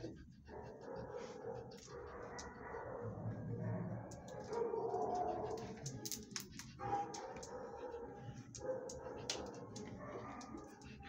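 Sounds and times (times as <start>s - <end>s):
dogs barking: 0.0s - 6.0s, 6.6s - 11.0s.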